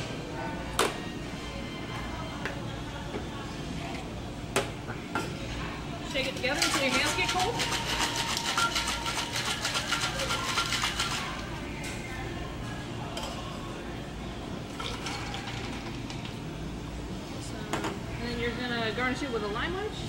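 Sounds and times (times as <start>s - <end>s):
ice rattling in cocktail shaker: 6.1s - 11.5s, 14.7s - 16.4s
drink pouring into a glass: 6.8s - 11.5s, 14.7s - 16.4s.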